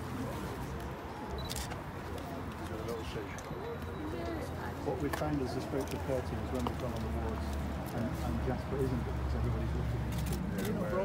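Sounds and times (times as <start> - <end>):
crowd chatter: 0.0 - 11.0
camera shutters clicking: 1.4 - 1.8, 10.1 - 10.8.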